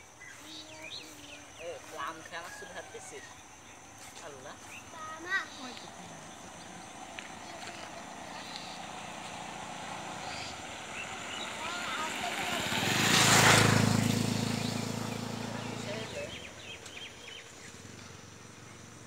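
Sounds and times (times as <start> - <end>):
motor vehicle passing by: 0.0 - 19.0.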